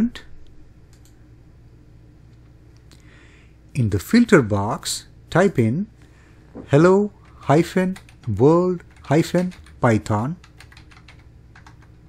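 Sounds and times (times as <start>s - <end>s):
person speaking: 0.0s - 0.4s, 6.6s - 11.2s.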